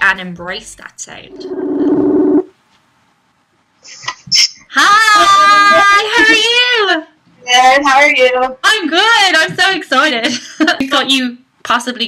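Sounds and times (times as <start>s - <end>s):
low ringing tone: 1.3s - 2.5s.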